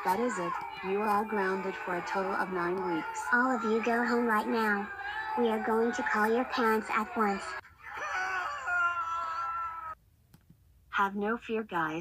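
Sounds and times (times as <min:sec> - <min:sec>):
whining cry: 0:00.0 - 0:10.0.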